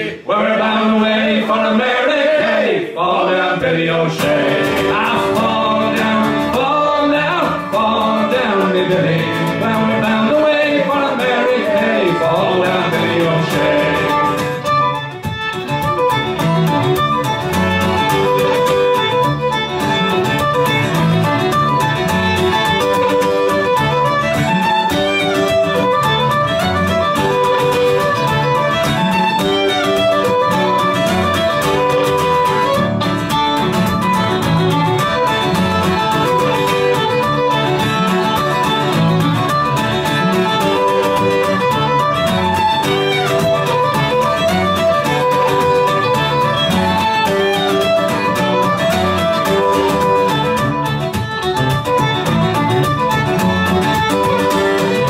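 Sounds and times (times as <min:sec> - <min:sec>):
acoustic guitar accompaniment: 0:00.0 - 0:55.0
fiddle melody: 0:00.0 - 0:55.0.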